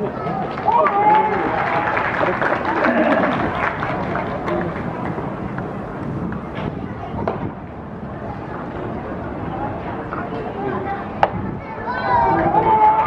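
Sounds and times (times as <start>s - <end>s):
crowd chatting: 0.0s - 13.0s.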